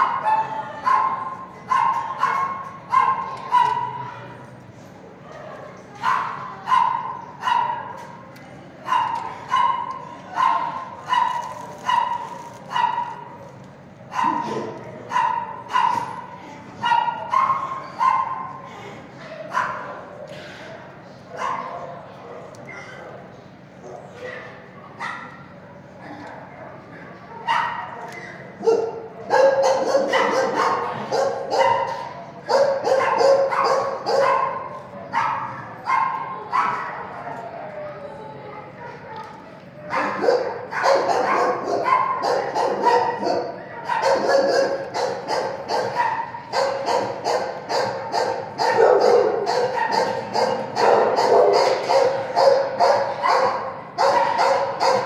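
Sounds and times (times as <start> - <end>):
dogs barking and yipping: 14.1 - 16.2, 28.6 - 37.0, 39.9 - 55.0.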